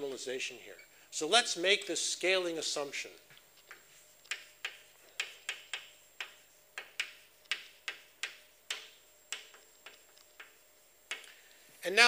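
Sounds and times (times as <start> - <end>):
chalk tapping on blackboard: 3.6 - 11.3.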